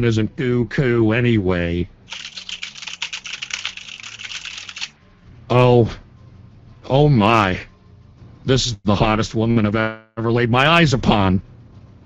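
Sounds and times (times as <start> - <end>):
fast typing on keyboard: 2.1 - 4.9.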